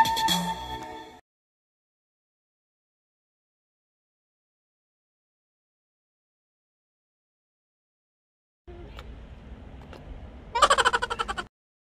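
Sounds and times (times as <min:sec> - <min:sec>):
low outdoor rumble: 0:08.7 - 0:11.5
woman laughing loudly: 0:10.6 - 0:11.5.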